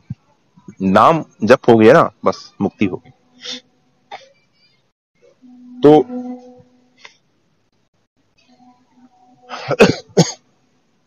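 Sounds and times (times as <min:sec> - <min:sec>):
man coughing: 0:09.5 - 0:10.4.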